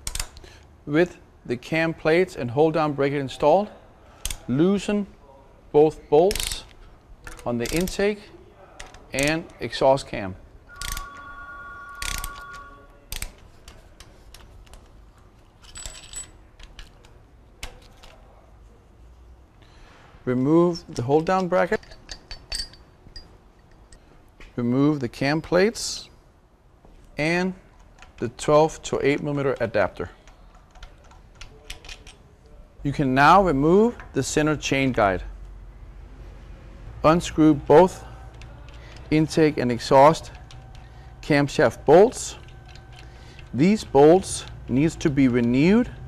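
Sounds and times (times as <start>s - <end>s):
metal parts and tools clicking: 0.0s - 0.4s, 6.3s - 8.1s, 8.8s - 9.6s, 10.7s - 11.2s, 12.0s - 18.2s, 20.9s - 24.0s, 27.7s - 32.3s, 37.2s - 46.0s
metal clinks: 10.7s - 12.8s, 21.6s - 24.1s
steady ringing tone: 10.7s - 13.0s.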